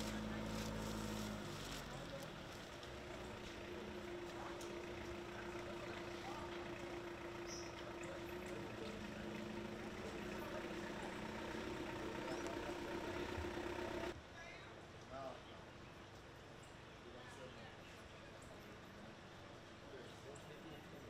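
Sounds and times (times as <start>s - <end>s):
vehicle engine idling: 0.0s - 14.2s
faint voices: 0.0s - 14.6s.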